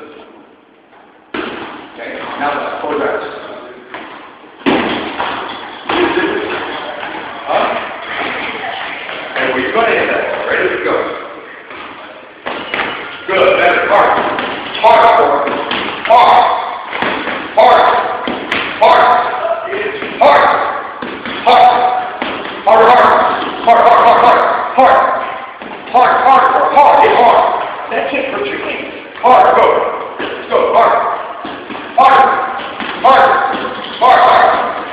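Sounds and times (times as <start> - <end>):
person calling out: 21.4 - 22.0.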